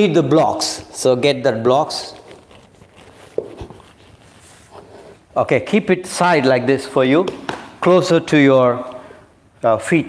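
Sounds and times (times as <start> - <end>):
yoga blocks sliding on mat: 2.8 - 5.3.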